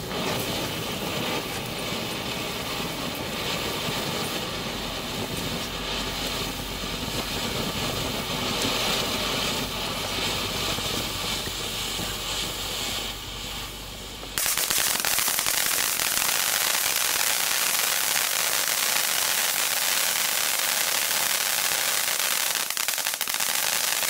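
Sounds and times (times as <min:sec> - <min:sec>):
fountain firework hissing: 0:00.0 - 0:24.0.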